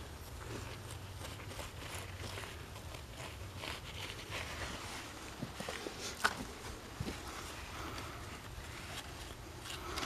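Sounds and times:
hands scraping soil: 0.0s - 10.0s.

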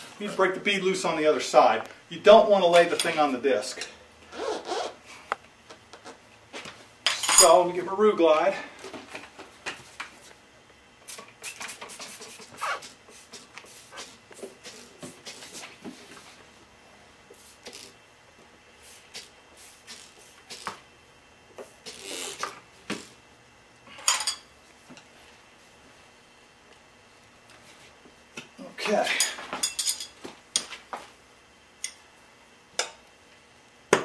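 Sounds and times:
spray bottle spraying: 11.1s - 15.6s.

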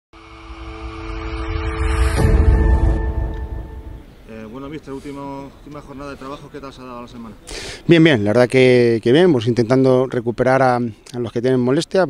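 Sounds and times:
low rumbling swell: 0.1s - 4.4s.

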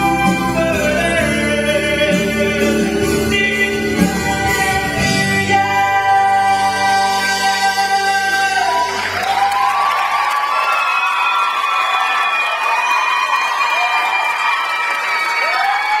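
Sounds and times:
male singer with band: 0.0s - 9.3s
audience cheering and applauding: 7.4s - 16.0s.

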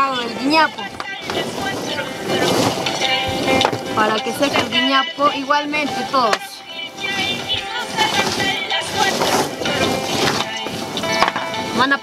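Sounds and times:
background music: 0.0s - 12.0s
dried maize rustling: 0.0s - 12.0s.

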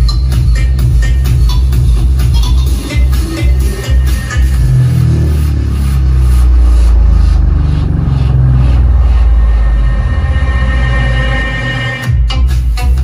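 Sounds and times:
electronic dance music: 0.0s - 13.0s
deep sustained bass note: 3.9s - 12.2s.

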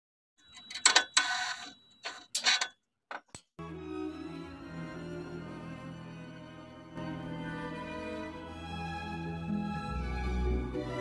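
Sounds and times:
background music: 3.6s - 11.0s.

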